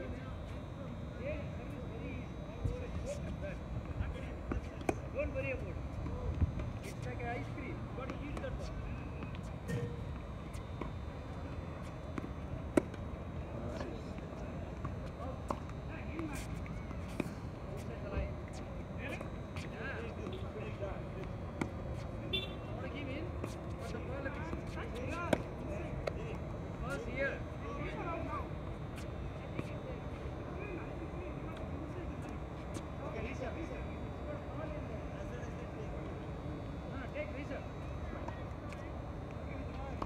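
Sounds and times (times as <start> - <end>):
tennis balls struck by rackets: 8.0 - 13.8, 24.5 - 26.2.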